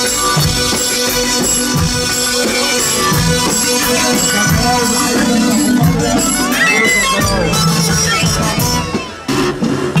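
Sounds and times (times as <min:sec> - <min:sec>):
double-reed shawms playing melody: 0:02.3 - 0:09.2.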